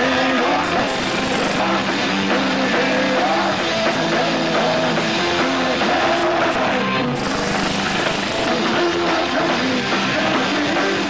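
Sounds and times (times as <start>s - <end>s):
punk rock band playing: 0.7s - 7.2s.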